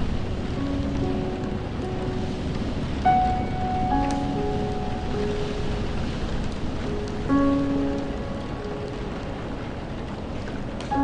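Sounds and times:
soft piano notes: 0:00.0 - 0:11.0
steady rain falling: 0:00.0 - 0:11.0.

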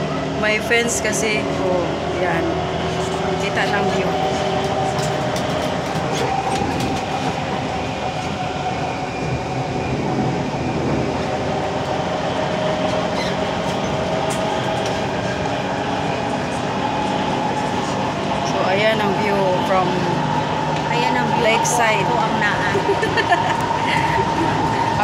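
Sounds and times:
train rumbling: 0:00.0 - 0:25.0.

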